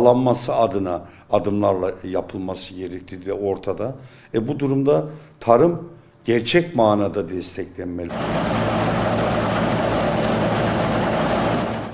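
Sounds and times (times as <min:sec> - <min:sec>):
combine harvester running: 0:08.1 - 0:11.9.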